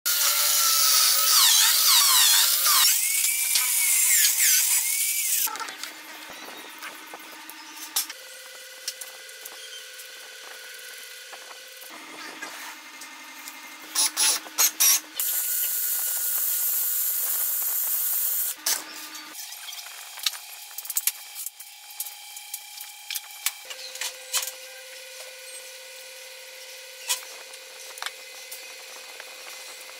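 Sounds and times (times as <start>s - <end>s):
electric drill whining: 0.1s - 5.5s.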